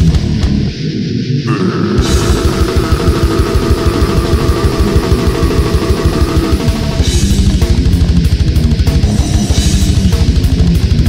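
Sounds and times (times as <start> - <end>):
distorted guitars: 0.0 - 11.0
fast kick drum strokes: 2.0 - 11.0.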